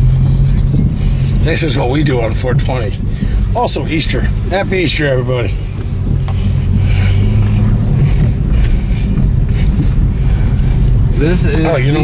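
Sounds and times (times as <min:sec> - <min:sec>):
car engine droning: 0:00.0 - 0:12.0
light jingling rattle: 0:01.6 - 0:12.0.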